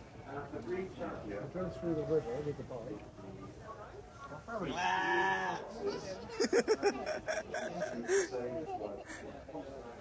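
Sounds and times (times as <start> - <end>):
murmur of background voices: 0.0 - 10.0
sheep bleating loudly: 4.7 - 5.6.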